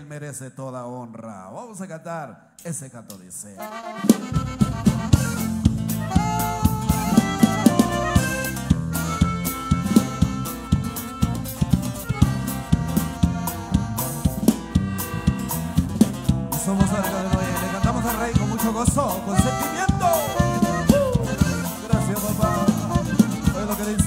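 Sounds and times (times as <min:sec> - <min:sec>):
bass: 0:00.0 - 0:24.0
saxophone: 0:03.6 - 0:15.9, 0:16.8 - 0:24.0
drum kit beat: 0:03.6 - 0:24.0
guitar: 0:03.6 - 0:24.0.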